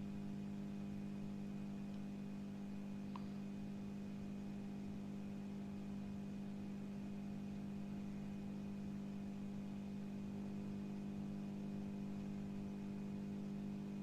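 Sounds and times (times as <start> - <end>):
low electrical hum: 0.0 - 14.0.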